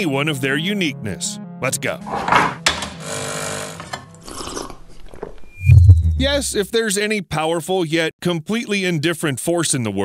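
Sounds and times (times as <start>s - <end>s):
espresso machine pump buzzing: 2.9s - 4.0s.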